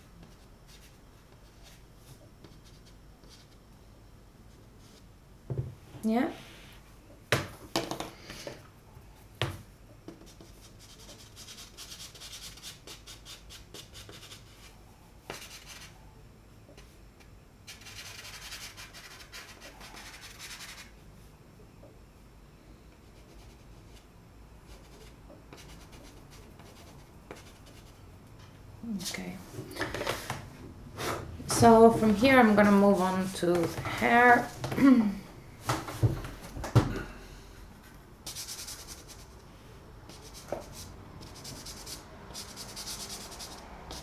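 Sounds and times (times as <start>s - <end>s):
chalk pastel scratching on paper: 10.2s - 14.7s, 15.3s - 16.0s, 17.7s - 20.9s, 23.0s - 28.0s, 38.2s - 39.4s, 40.1s - 44.0s.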